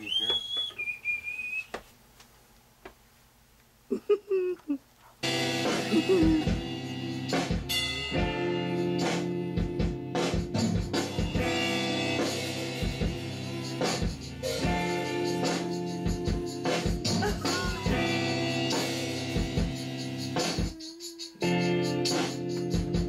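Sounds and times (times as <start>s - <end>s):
band with drums and guitar: 5.2s - 23.0s
brief pitched voice sound: 5.9s - 6.5s.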